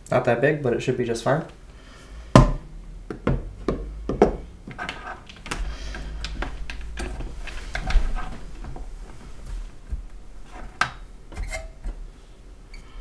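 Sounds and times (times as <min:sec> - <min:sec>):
low handling rumble: 0:02.1 - 0:11.3.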